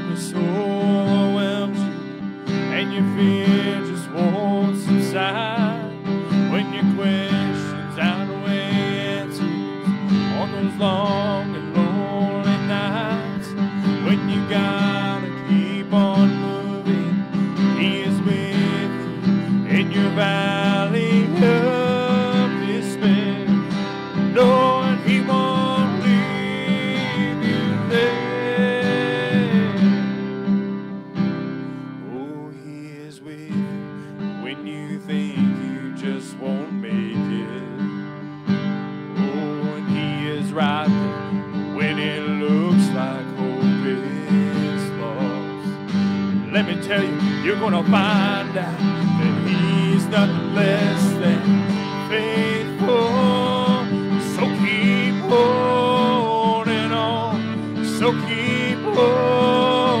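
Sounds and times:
man singing: 0:00.0 - 0:30.0, 0:32.0 - 0:33.8, 0:34.4 - 0:38.0, 0:39.1 - 0:45.8, 0:46.4 - 1:00.0
acoustic guitar strumming: 0:00.0 - 1:00.0.

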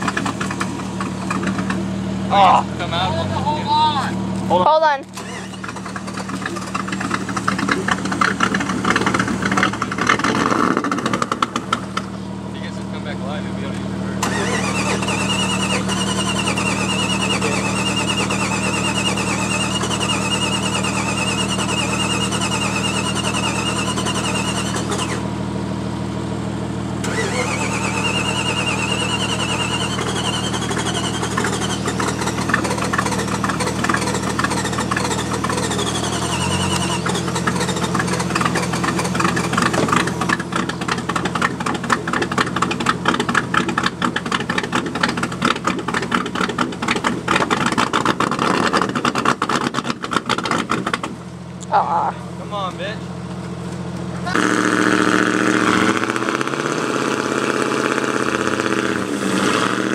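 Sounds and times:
engine running: 0:00.0 - 0:59.9.

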